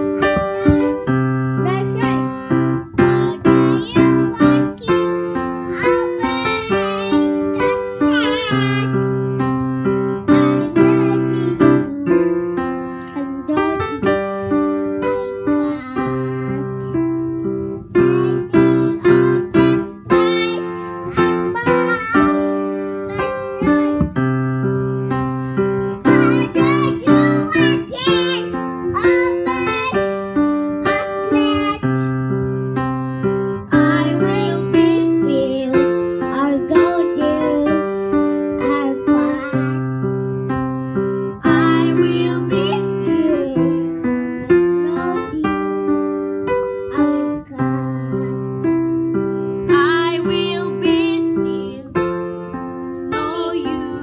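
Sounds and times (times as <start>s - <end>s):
small child singing: 0.0s - 32.5s, 33.6s - 40.3s, 41.4s - 49.0s, 49.6s - 52.0s, 52.9s - 54.0s
electric piano chords: 0.0s - 54.0s.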